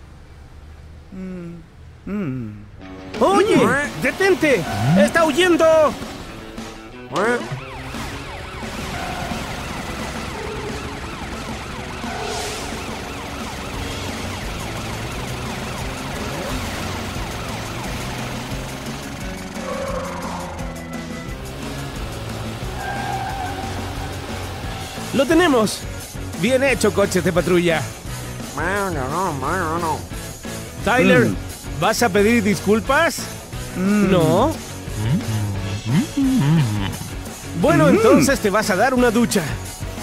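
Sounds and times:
chase music: 2.8 - 40.0
cartoon sirens wailing: 4.4 - 5.6, 7.2 - 21.3, 22.5 - 27.9, 30.9 - 31.4, 34.0 - 38.6.

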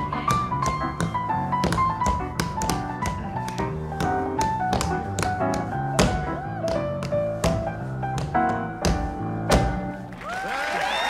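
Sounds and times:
heeled shoes tapping on wooden stage: 0.0 - 10.1
piano music: 0.0 - 10.3.

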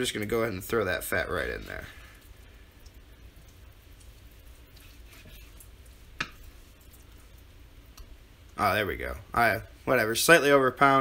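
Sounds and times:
knife cutting on wooden board: 4.8 - 5.6.

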